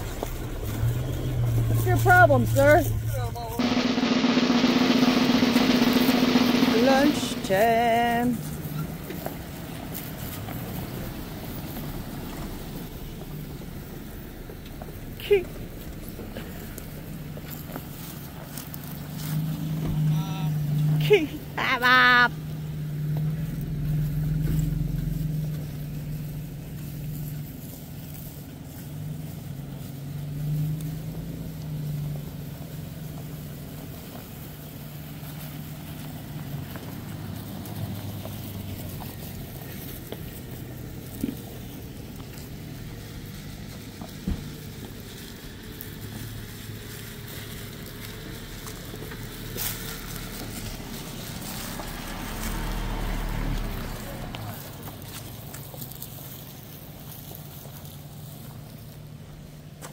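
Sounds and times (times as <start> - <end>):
suv engines idling: 0.0 - 59.9.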